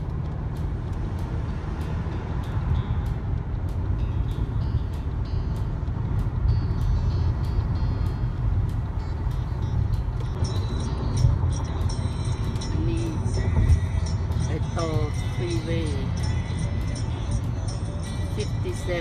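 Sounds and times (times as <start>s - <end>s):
road and engine rumble inside car: 0.0s - 19.0s.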